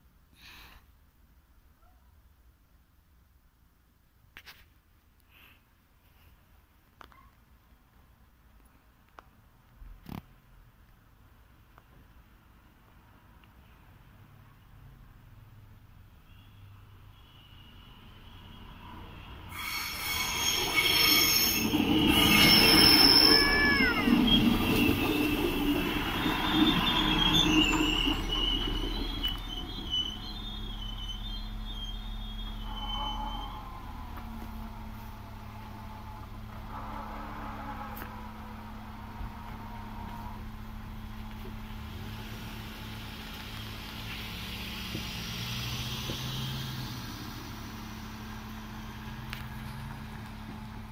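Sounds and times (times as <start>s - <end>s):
train wheels squealing on rails: 16.3s - 50.9s
car driving across: 19.7s - 50.9s.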